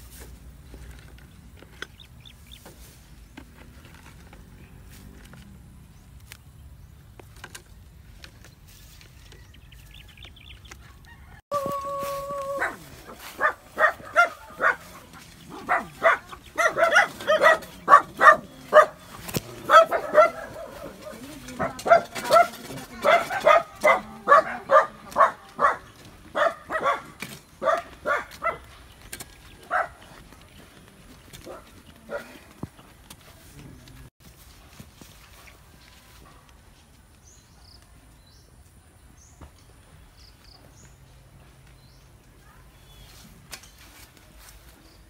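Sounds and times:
dog long held call: 0:11.5 - 0:14.8
dog barking: 0:12.6 - 0:28.7, 0:29.7 - 0:30.0, 0:31.4 - 0:32.4.

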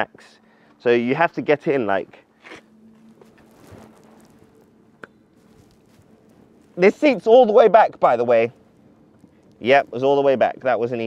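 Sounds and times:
clothing and seat rustling: 0:02.4 - 0:07.5.

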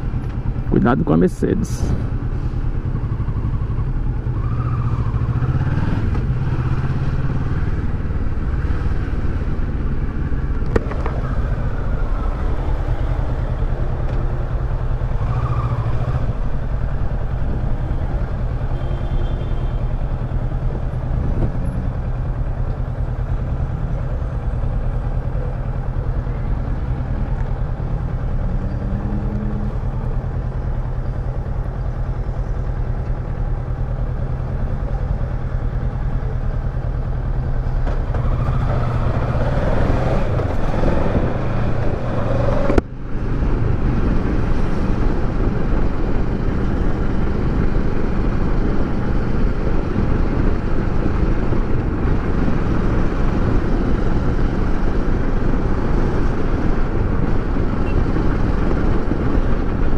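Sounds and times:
road and wind noise: 0:00.0 - 0:59.9.

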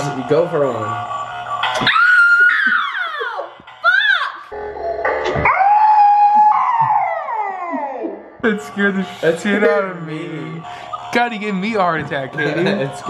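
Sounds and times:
woman screaming: 0:01.8 - 0:04.5, 0:05.5 - 0:08.2.

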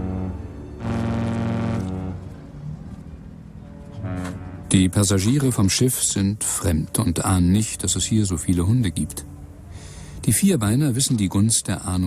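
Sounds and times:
ship horn low blast: 0:00.0 - 0:05.5.

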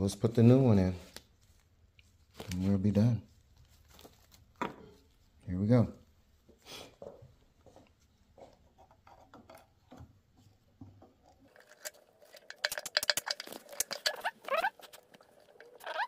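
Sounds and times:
plastic parts clicking: 0:11.6 - 0:16.0
short rising squeaks: 0:13.8 - 0:15.0, 0:15.7 - 0:16.0.

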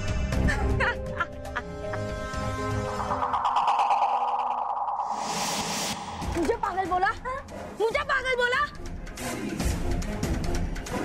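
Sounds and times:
whoosh: 0:02.4 - 0:07.8
warbling electronic tone: 0:02.6 - 0:07.5.

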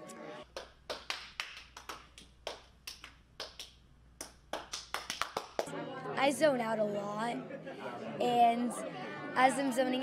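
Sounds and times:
people clapping: 0:00.4 - 0:05.7.

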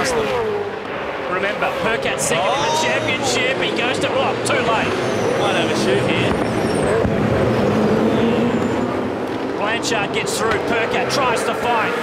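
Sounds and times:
race car engines racing: 0:00.0 - 0:12.0.

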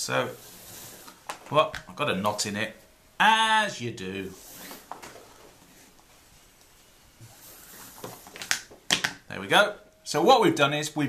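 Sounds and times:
cord rustling and rubbing: 0:00.3 - 0:01.6, 0:04.3 - 0:09.2.

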